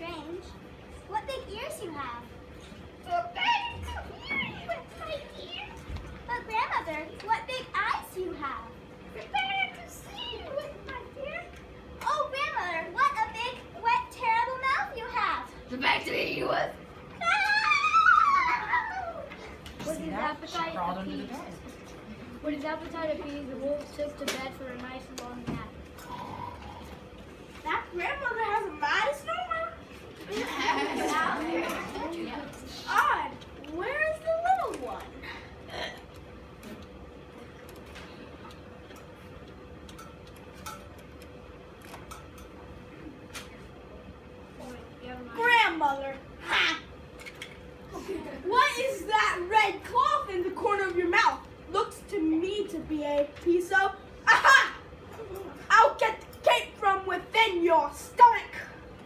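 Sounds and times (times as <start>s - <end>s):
children talking and calling out: 0.0s - 39.4s, 44.1s - 59.0s
faint steady hum: 0.0s - 59.0s.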